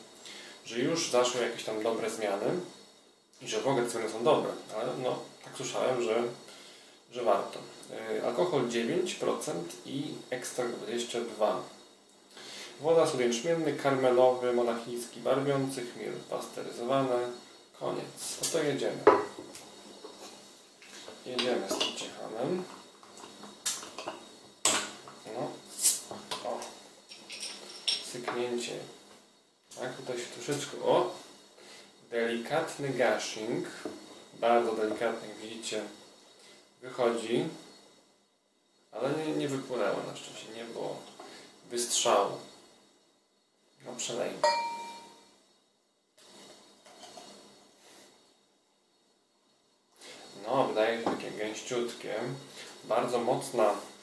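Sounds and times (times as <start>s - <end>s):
hiss of escaping gas: 0.0s - 3.4s, 4.4s - 28.0s, 29.9s - 38.2s, 40.9s - 43.0s, 49.9s - 51.2s, 52.4s - 54.0s.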